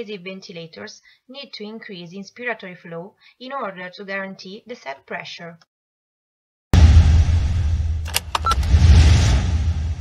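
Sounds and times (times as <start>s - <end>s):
rumbling hissing sound effect: 6.8s - 10.0s
sharp clicks: 8.0s - 8.7s
high beep: 8.2s - 8.7s.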